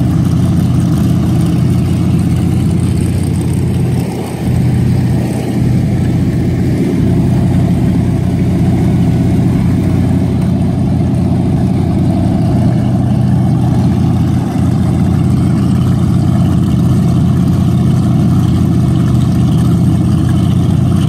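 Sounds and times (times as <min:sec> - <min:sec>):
boat engines idling: 0:00.0 - 0:21.0
exhausts spitting water: 0:00.0 - 0:21.0.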